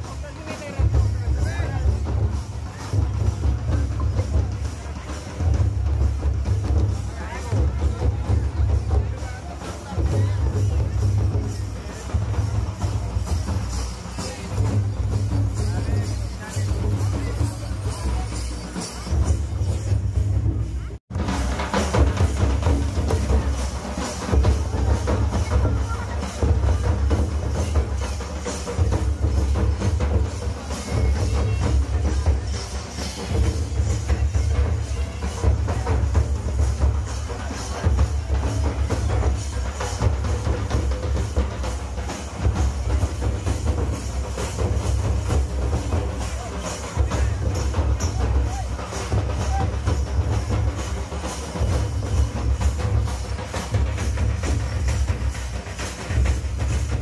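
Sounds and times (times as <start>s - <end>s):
crowd voices: 0.0s - 57.0s
drums beating: 0.0s - 57.0s.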